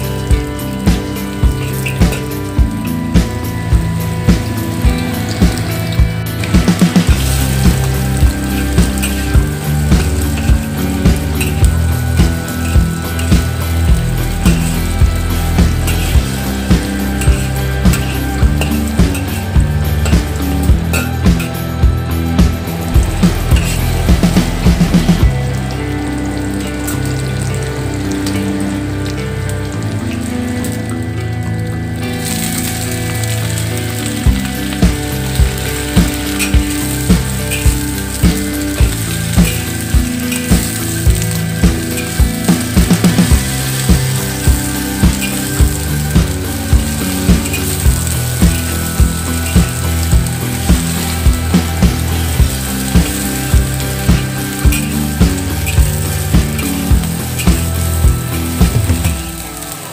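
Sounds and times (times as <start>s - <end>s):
background music: 0.0s - 59.9s
cabbage sizzling in hot oil: 0.0s - 59.9s
metal spatula scraping wok: 7.1s - 21.7s, 22.8s - 24.8s.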